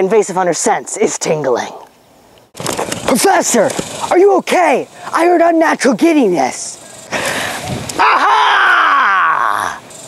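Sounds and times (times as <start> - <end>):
man yelling: 8.0 - 9.8.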